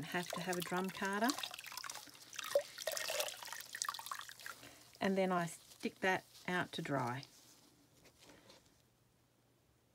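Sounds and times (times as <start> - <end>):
water dripping: 0.0 - 5.0
water splashing in a plastic tub: 0.0 - 5.0.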